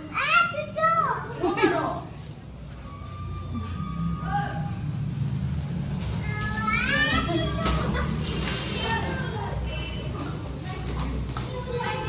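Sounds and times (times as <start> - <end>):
children's chatter and voices: 0.0 - 2.3, 5.9 - 12.0.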